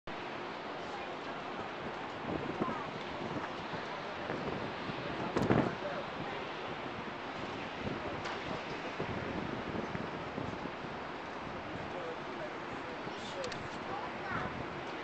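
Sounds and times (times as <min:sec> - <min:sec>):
wind on microphone: 0:00.1 - 0:15.0.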